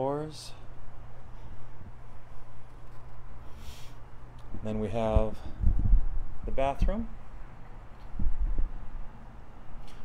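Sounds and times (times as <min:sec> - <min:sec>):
dull low thumps: 0:05.1 - 0:06.5, 0:08.1 - 0:09.0.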